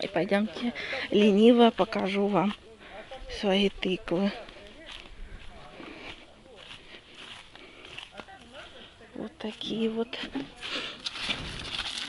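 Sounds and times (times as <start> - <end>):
leaves and grass rustling: 0.0 - 12.0.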